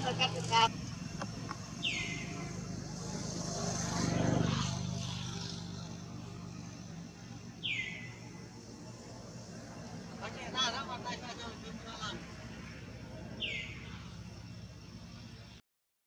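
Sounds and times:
vehicle engine hum: 0:00.0 - 0:15.6
warbling bird call: 0:01.8 - 0:02.6, 0:07.6 - 0:08.3.

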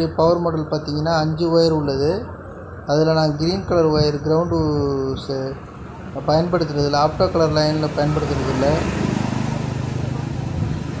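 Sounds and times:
engine running: 0:05.6 - 0:11.0.

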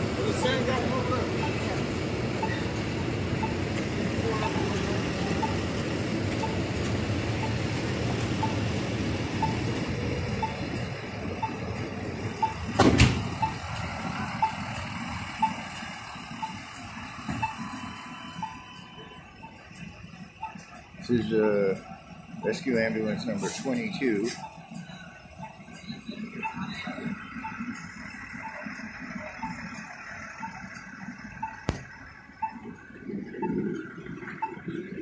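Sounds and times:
city street traffic: 0:00.0 - 0:35.0
short high beeps: 0:01.4 - 0:01.6, 0:02.4 - 0:02.6, 0:10.4 - 0:10.8, 0:12.3 - 0:12.7, 0:17.3 - 0:19.6, 0:23.2 - 0:27.8, 0:31.4 - 0:31.8.

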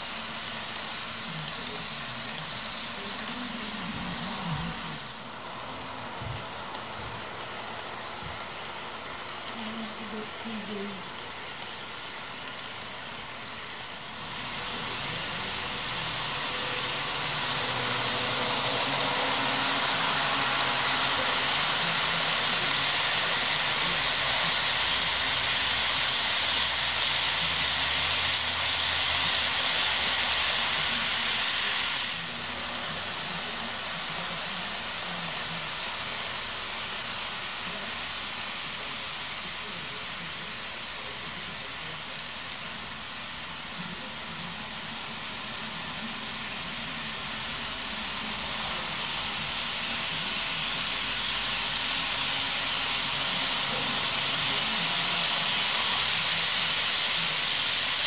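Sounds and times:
model train wheels on rails: 0:00.0 - 0:58.0.

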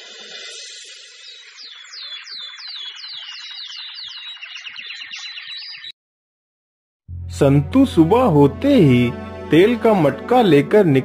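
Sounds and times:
birds chirping: 0:00.2 - 0:06.0.

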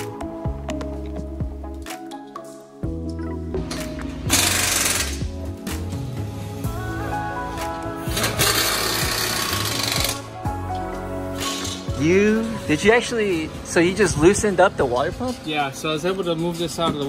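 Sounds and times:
background music: 0:00.0 - 0:17.0
power wrench running: 0:04.3 - 0:05.3, 0:08.1 - 0:10.2.

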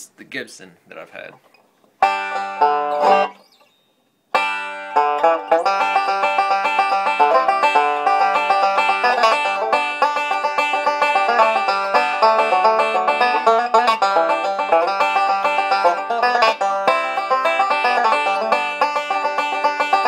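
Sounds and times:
banjo chord ringing: 0:02.0 - 0:03.4, 0:04.4 - 0:20.0
fast banjo picking: 0:02.0 - 0:03.4, 0:04.3 - 0:20.0.

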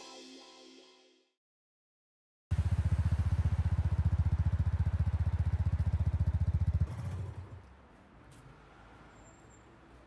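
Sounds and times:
motorcycle engine idling: 0:02.5 - 0:07.0.

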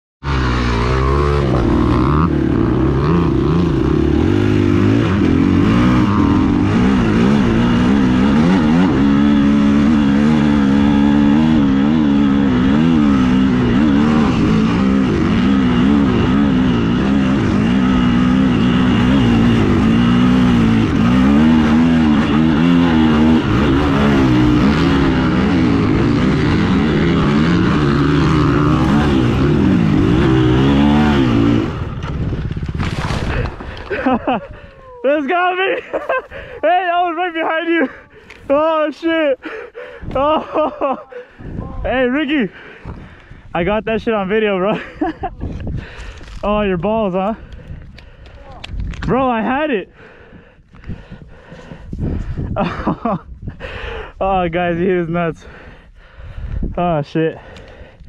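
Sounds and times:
dirt bike engine revving: 0:00.2 - 0:34.6.

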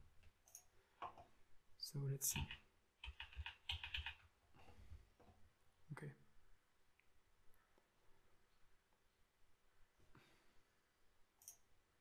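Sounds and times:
computer mouse clicks: 0:11.4 - 0:11.6.

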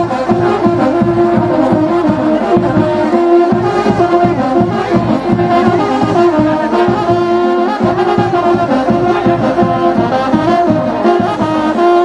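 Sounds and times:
brass band playing: 0:00.0 - 0:12.0
steady drum beat: 0:00.0 - 0:12.0.

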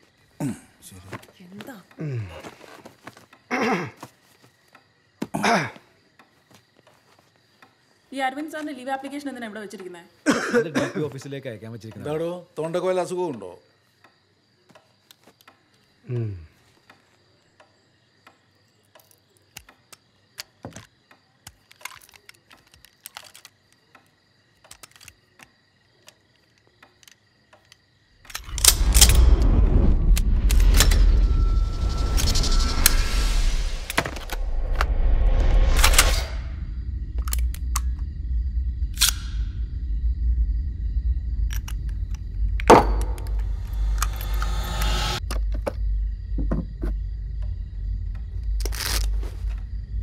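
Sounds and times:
low steady drone: 0:28.3 - 0:50.0
swelling rush: 0:28.4 - 0:45.2
sharp hit: 0:28.5 - 0:38.1, 0:42.3 - 0:45.2.

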